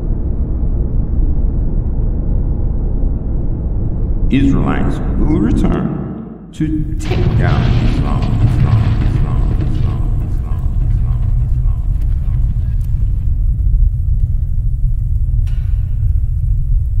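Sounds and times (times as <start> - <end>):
deep rumble: 0.0 - 17.0
echoing spoken line: 4.3 - 12.9.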